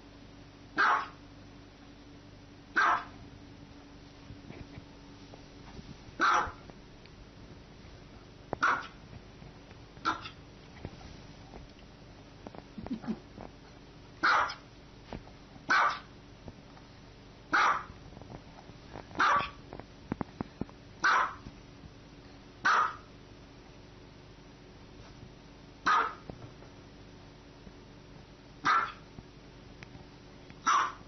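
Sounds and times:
small dog barking: 0.8s - 1.2s, 2.7s - 3.2s, 6.2s - 6.7s, 8.6s - 9.0s, 10.0s - 10.4s, 14.2s - 14.7s, 15.7s - 16.1s, 17.5s - 18.0s, 19.2s - 19.6s, 21.0s - 21.4s, 22.6s - 23.1s, 25.8s - 26.3s, 28.6s - 29.1s, 30.6s - 31.0s.

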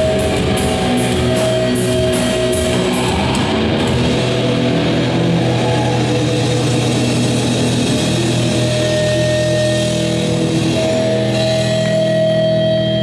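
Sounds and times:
distorted electric guitar notes: 0.0s - 13.0s
metal band playing live: 0.0s - 13.0s.

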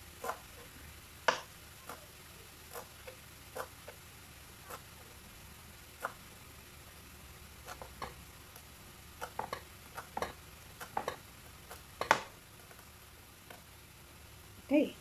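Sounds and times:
mushrooms sizzling in a pan: 0.0s - 15.0s
knife chopping on plastic board: 0.2s - 0.5s, 1.2s - 2.1s, 2.7s - 3.8s, 6.0s - 6.2s, 7.6s - 8.2s, 9.2s - 12.3s.

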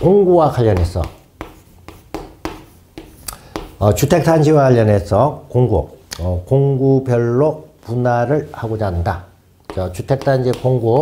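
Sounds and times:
chalk tapping and scratching: 0.0s - 4.4s, 9.6s - 11.0s.

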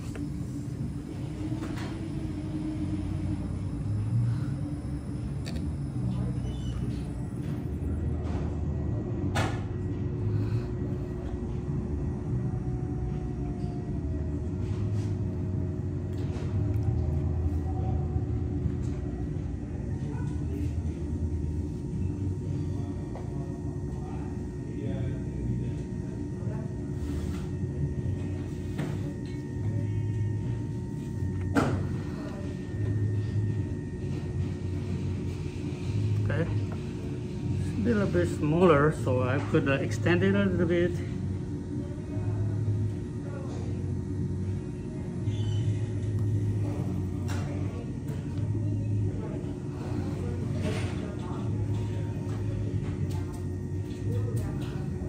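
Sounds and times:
pottery wheel humming: 0.0s - 55.0s.

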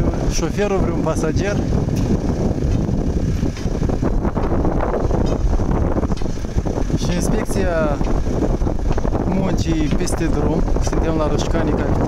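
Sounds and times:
passing traffic: 0.0s - 12.0s
wind buffeting microphone: 0.0s - 12.0s.

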